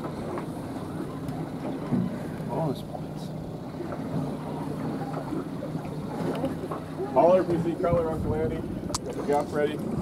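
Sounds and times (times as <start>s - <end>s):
boat engine hum: 0.0s - 10.0s
water noise: 0.0s - 10.0s
wind: 0.0s - 10.0s.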